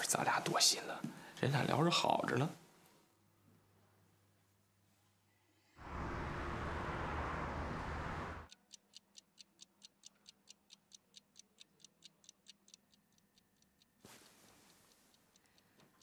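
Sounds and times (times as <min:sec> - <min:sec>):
loud rushing noise: 0:05.8 - 0:08.5
pendulum wall clock ticking: 0:08.5 - 0:16.0.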